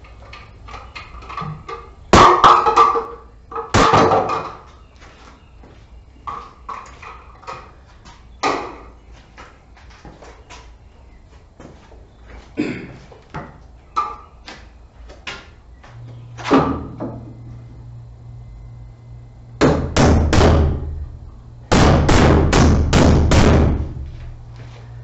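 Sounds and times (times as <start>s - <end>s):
footsteps: 4.6s - 13.7s, 23.9s - 25.0s
loud knocks: 19.6s - 21.0s, 21.7s - 24.2s.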